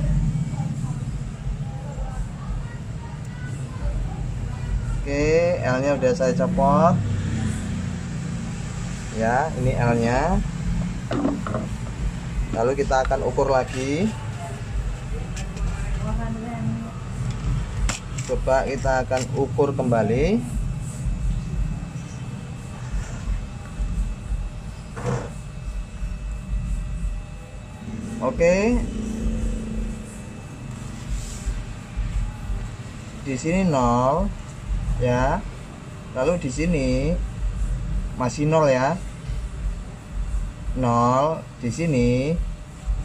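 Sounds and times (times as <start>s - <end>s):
machine hum: 0.0s - 43.0s
whirring noise: 5.7s - 43.0s
low background rumble: 25.6s - 38.3s.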